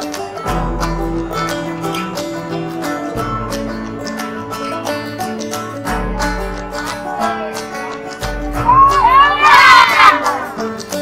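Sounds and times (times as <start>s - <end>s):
music playing: 0.0s - 11.0s
women shouting and cheering: 6.5s - 10.8s.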